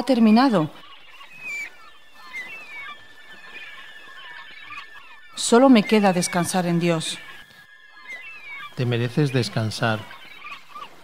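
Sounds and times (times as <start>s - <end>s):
faint gull calls: 0.0s - 11.0s.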